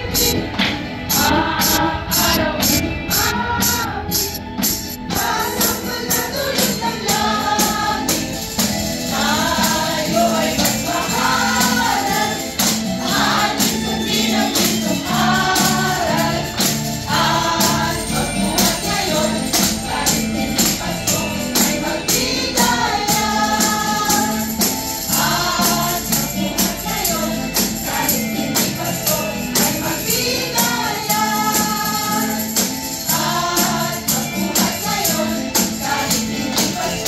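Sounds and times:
backing track with percussion: 0.0s - 37.0s
group singing a carol: 0.0s - 37.0s.

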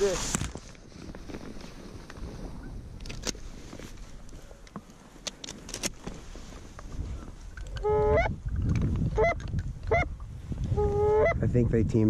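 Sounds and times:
geese honking: 7.7s - 8.3s, 9.2s - 10.1s, 10.8s - 11.4s.

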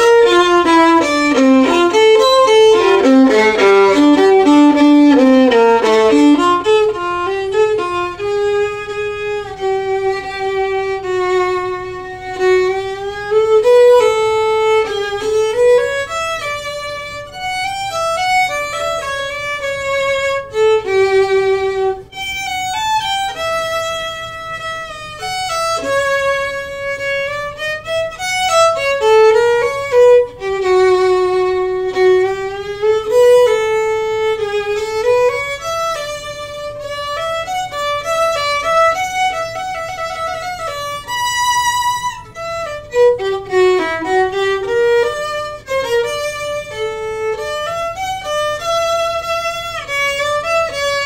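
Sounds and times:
solo bowed violin: 0.0s - 51.0s.

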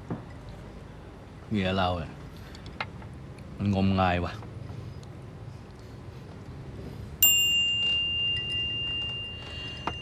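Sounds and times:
high bell chime: 7.2s - 10.0s.

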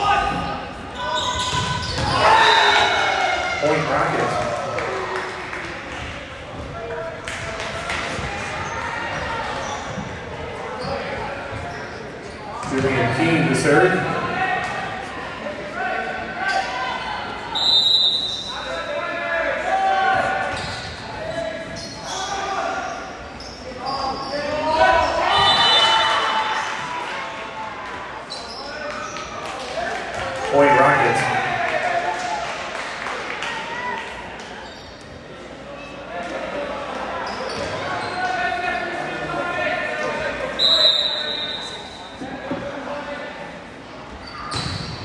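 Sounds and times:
referee's whistle: 17.5s - 18.7s, 25.0s - 26.4s, 40.5s - 42.2s.

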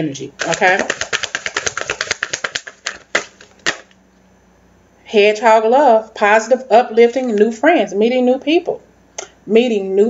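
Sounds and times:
cards being shuffled: 0.4s - 3.9s.

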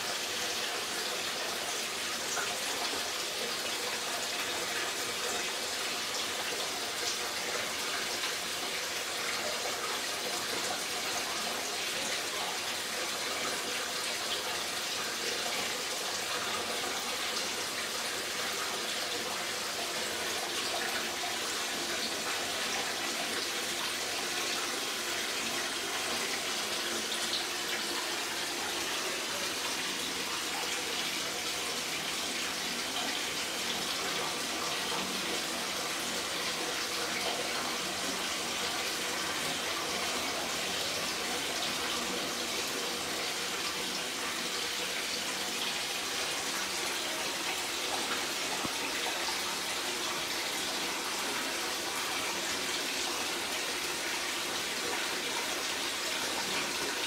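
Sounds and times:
tap water filling bath: 0.0s - 57.0s.

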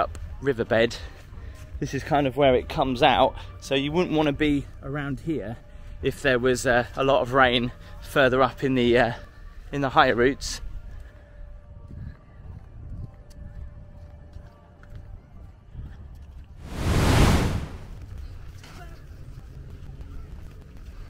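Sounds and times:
whooshing wind gust: 16.6s - 18.0s.

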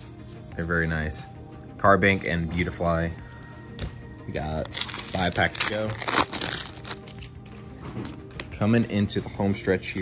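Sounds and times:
foil wrapper crinkling: 4.6s - 7.4s.

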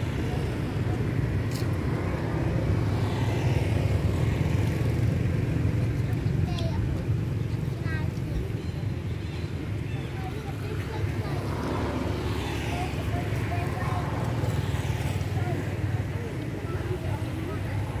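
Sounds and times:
faint scattered voices: 0.0s - 18.0s.

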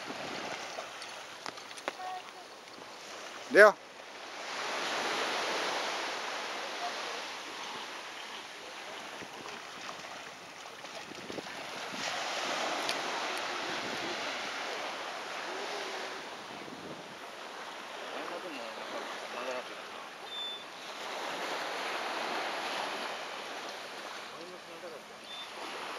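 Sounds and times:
small waves washing onto beach: 0.0s - 25.9s.

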